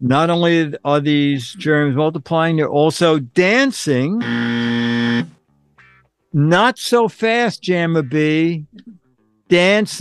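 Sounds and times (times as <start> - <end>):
distorted buzzer tone: 4.2 - 6.0.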